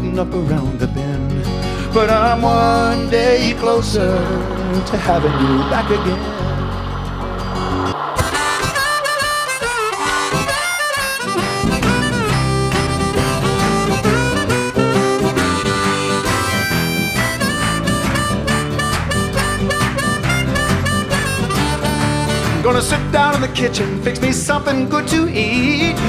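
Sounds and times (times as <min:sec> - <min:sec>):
harmonica melody with bent notes: 0:08.8 - 0:22.6.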